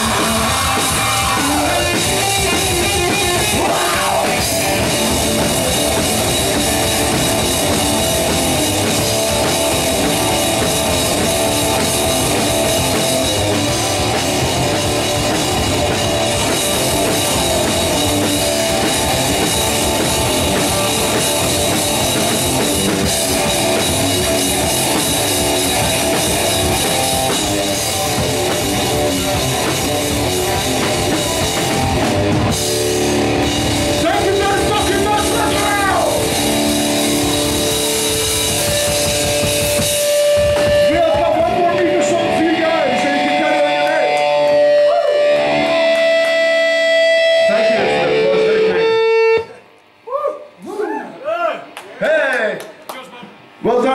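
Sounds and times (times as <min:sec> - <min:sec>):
drum kit: 0:00.0 - 0:49.6
distorted electric guitars: 0:00.0 - 0:50.7.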